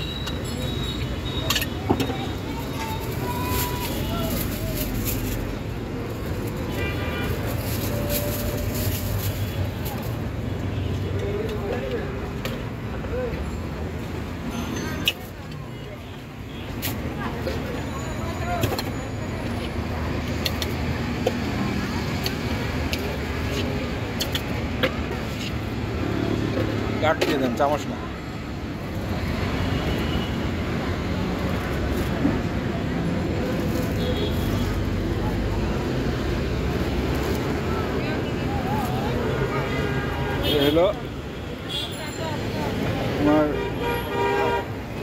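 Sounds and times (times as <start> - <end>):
street traffic rumble: 0.0 - 45.0.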